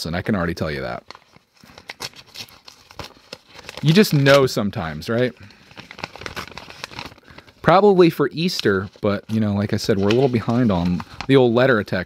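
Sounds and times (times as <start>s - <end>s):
paper envelope rustling: 0.6s - 12.0s.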